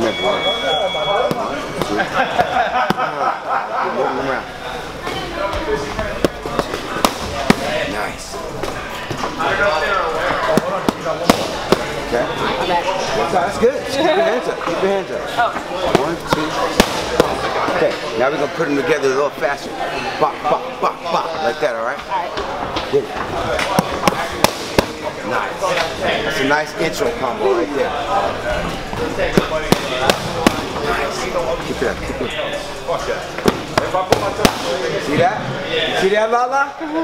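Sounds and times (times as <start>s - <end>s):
boxing gloves smacking mitts: 6.2s - 7.7s, 10.5s - 11.9s, 16.0s - 17.4s, 33.4s - 34.7s.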